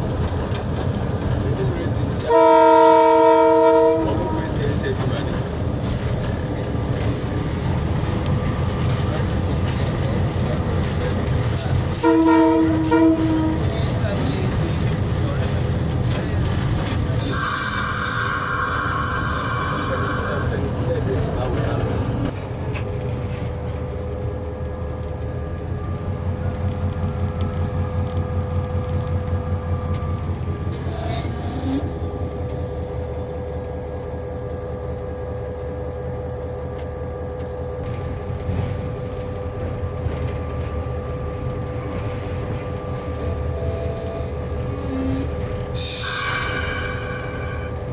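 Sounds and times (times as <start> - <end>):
diesel locomotive engine rumble: 0.0 - 47.9.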